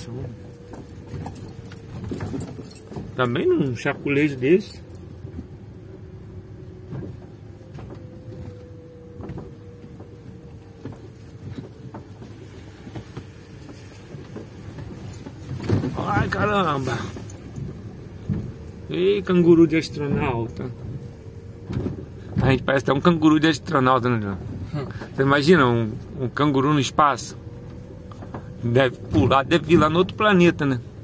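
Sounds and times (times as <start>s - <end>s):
car suspension noise: 0.0s - 31.0s
road rumble in car cabin: 0.0s - 31.0s.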